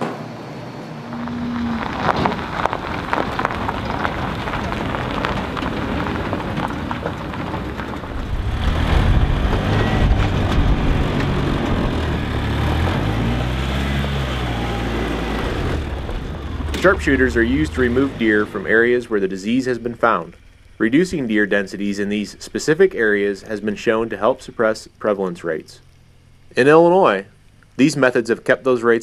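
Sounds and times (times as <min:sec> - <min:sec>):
utility vehicle engine running: 0:00.0 - 0:29.0.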